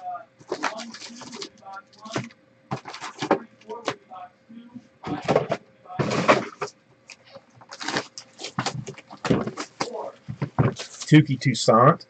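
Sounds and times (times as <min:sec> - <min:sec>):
cardboard rubbing: 0:00.4 - 0:03.4, 0:07.6 - 0:11.2
plastic wrap crinkling: 0:00.5 - 0:02.2, 0:07.6 - 0:11.1.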